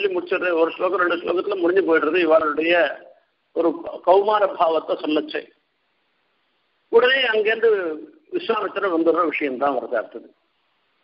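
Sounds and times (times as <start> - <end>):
man talking: 0.0 - 5.6, 6.9 - 10.3.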